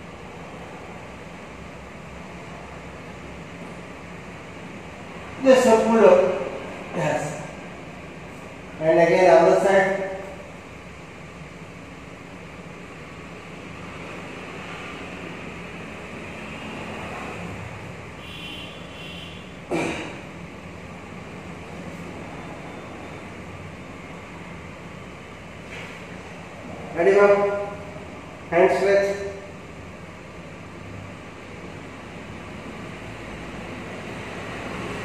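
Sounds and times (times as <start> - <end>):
room noise hum: 0.0 - 35.0.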